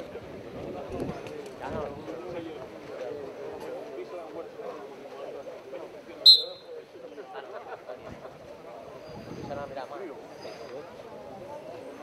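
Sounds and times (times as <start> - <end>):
crowd chatter: 0.0 - 12.0
referee whistle blast: 6.3 - 6.7.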